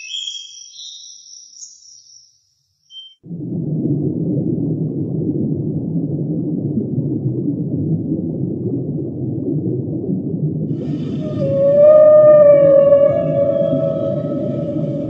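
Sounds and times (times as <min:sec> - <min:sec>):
steady deep rumble: 0:03.3 - 0:15.0
humpback whale call: 0:10.8 - 0:15.0.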